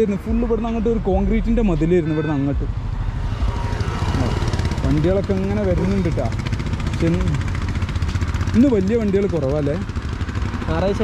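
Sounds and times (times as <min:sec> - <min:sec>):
man talking: 0:00.0 - 0:02.8
highway traffic rumble: 0:00.0 - 0:11.0.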